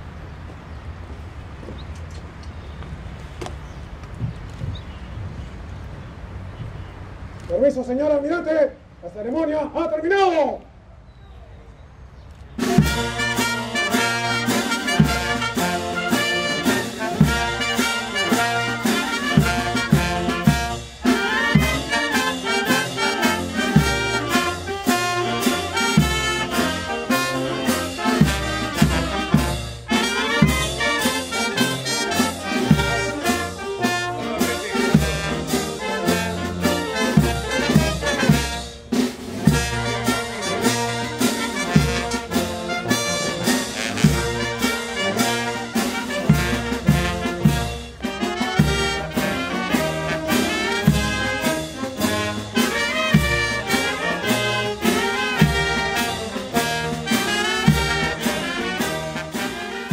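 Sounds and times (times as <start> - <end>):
brass band melody: 12.6 - 59.9
steady drum beat: 12.6 - 59.9.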